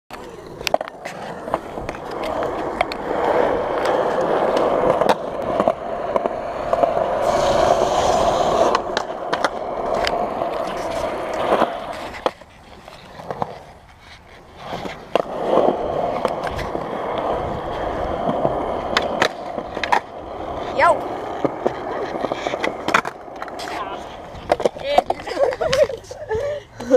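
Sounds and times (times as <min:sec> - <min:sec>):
skateboard clicks and knocks: 0:00.1 - 0:26.9
skateboard scraping: 0:00.1 - 0:26.9
skateboard wheels rolling on concrete: 0:00.1 - 0:26.9.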